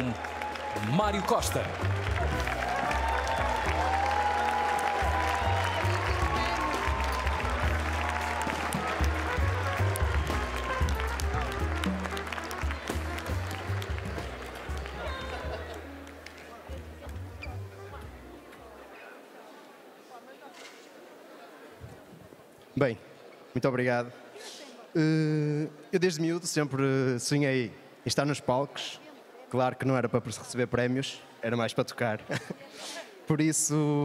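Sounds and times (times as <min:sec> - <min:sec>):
audience applause: 0:00.0 - 0:17.1
crowd voices: 0:01.0 - 0:23.5.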